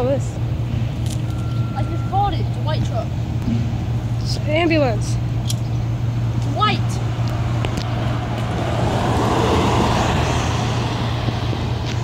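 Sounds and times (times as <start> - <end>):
vehicle driving past: 6.8 - 12.0.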